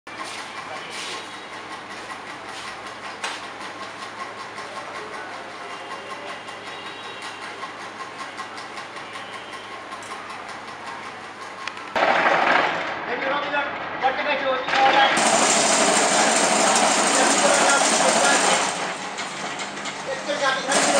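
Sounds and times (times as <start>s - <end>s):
machinery rattling clatter: 0.1s - 14.0s, 14.6s - 20.9s.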